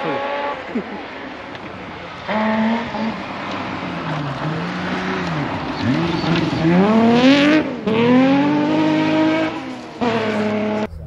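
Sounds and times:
rally car engine approaching: 0.0s - 11.0s.

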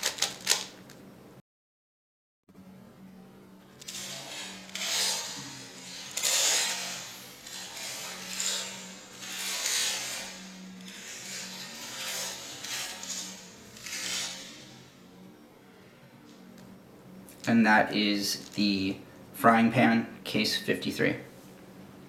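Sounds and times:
puzzle cube clattering turns: 0.0s - 1.0s, 3.8s - 14.7s
faint low hum: 2.5s - 22.0s.

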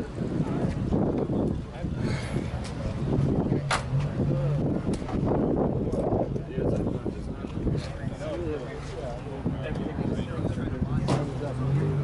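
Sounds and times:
wind buffeting microphone: 0.0s - 7.9s.

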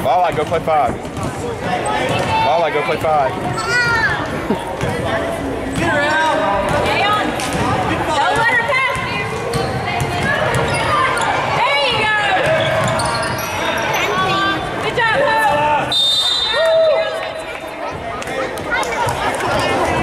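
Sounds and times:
basketball bouncing on court: 4.8s - 5.1s, 6.6s - 13.4s
referee's whistle: 15.9s - 16.8s.

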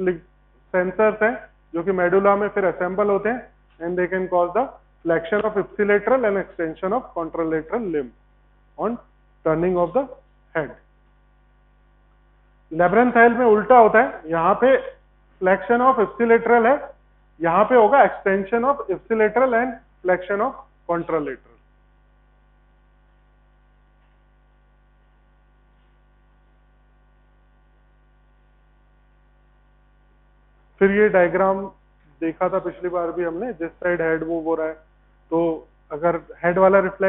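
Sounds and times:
man speaking: 0.0s - 0.2s, 0.8s - 8.1s, 8.8s - 10.8s, 12.7s - 21.5s, 30.8s - 37.0s
electrical mains hum: 0.0s - 37.0s.

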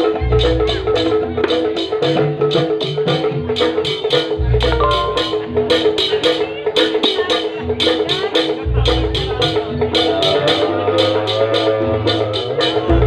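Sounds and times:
mallet-struck percussion music: 4.6s - 6.4s.

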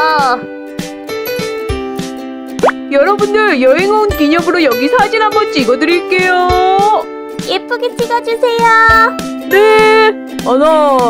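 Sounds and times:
light children's background music: 0.0s - 11.0s.

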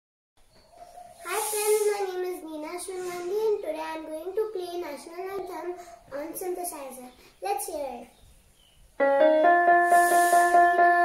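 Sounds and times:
girl speaking: 1.2s - 8.2s.

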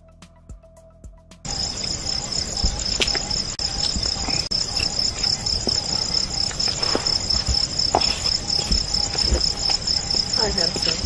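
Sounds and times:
crickets chirping: 1.5s - 11.0s.

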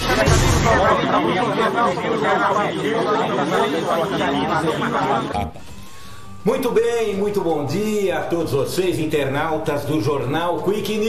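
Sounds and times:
overlapping man's voices: 0.0s - 5.6s.

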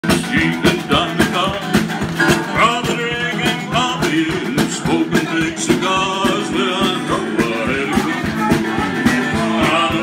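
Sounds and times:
drum kit beat: 0.0s - 10.0s
man singing into a microphone: 0.0s - 10.0s
strummed acoustic guitar: 0.0s - 10.0s.

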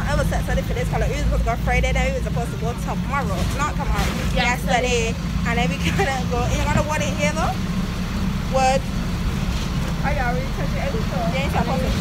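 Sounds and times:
bus engine rumble: 0.0s - 12.0s
road noise: 0.0s - 12.0s
voices talking: 0.0s - 12.0s.

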